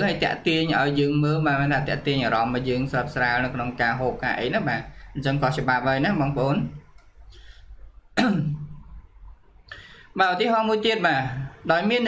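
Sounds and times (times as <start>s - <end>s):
man breathing: 9.7s - 10.2s.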